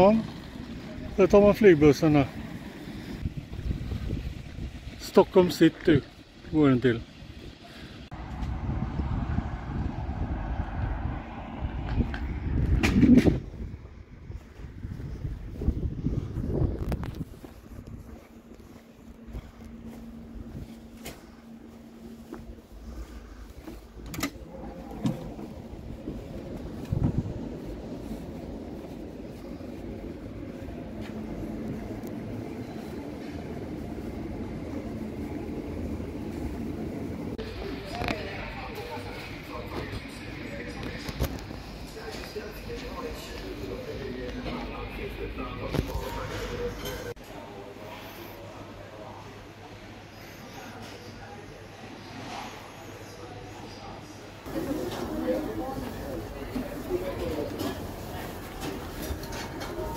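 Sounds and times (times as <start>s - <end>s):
bus engine rumbling: 0.0s - 47.2s, 54.5s - 59.9s
wind on microphone: 3.1s - 5.0s, 8.2s - 18.2s, 25.1s - 30.1s.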